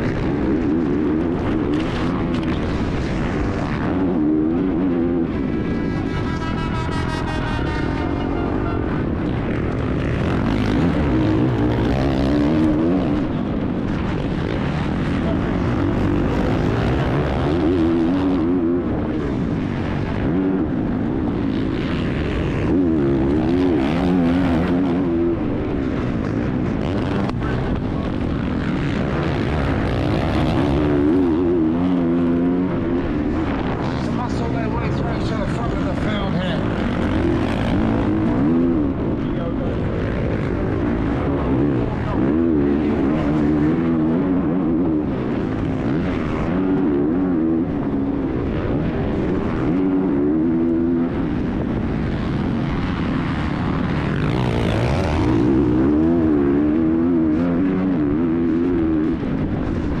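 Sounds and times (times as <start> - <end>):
motocross bike engine revving: 0.0 - 60.0
wind and track noise: 0.0 - 60.0.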